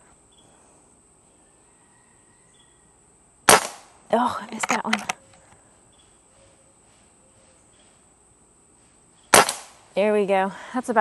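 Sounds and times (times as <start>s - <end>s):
air rifle shot: 3.5s - 3.9s, 9.3s - 9.8s.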